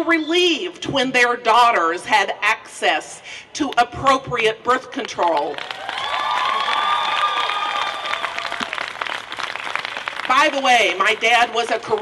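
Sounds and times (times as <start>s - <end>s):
crowd cheering: 5.6s - 10.2s
crowd applauding: 5.6s - 11.1s.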